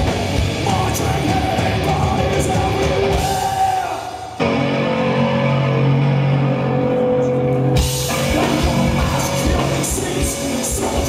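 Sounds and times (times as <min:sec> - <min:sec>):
distorted guitars and bass chord: 0:00.0 - 0:03.5, 0:04.4 - 0:11.0.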